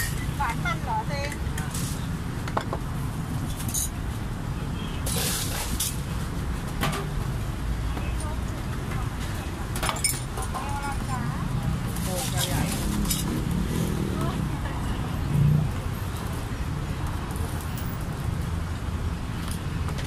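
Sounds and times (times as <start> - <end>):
low traffic rumble: 0.0 - 20.0.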